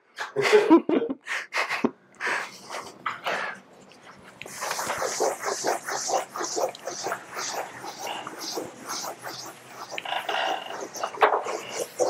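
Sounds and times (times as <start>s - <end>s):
eraser rubbing on blackboard: 4.4s - 12.0s.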